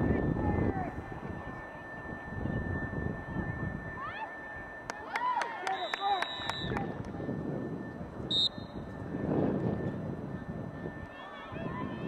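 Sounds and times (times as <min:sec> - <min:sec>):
low rumble of outdoor noise: 0:00.0 - 0:12.0
whistle blast: 0:00.2 - 0:09.2.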